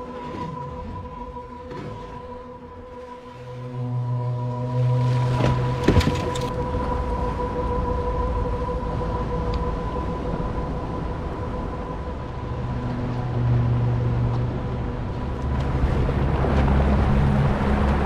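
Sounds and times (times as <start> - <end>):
steady whine: 0.0 - 17.2
boat motor running: 0.0 - 18.0
low hum: 0.0 - 18.0
water wash: 0.0 - 18.0
wind: 0.0 - 18.0.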